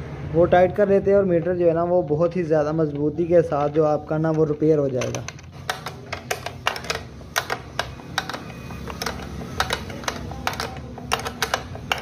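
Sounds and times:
spanner clicking on nuts: 1.1s - 12.0s.

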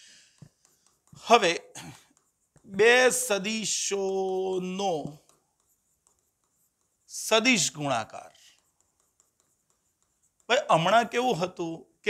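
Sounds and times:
chalk scratching on blackboard: 0.0s - 12.0s.

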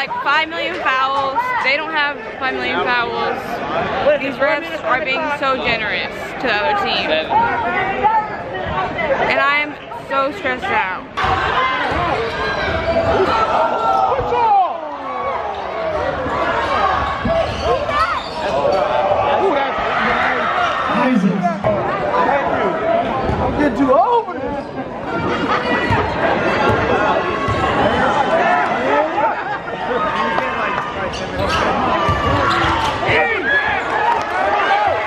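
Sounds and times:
crowd and players calling out: 0.0s - 35.0s
voices echoing in hall: 0.0s - 35.0s.

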